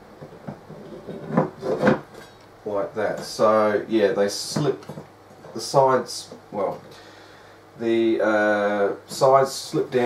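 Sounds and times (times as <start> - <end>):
metal scraping on metal: 0.6 - 2.3.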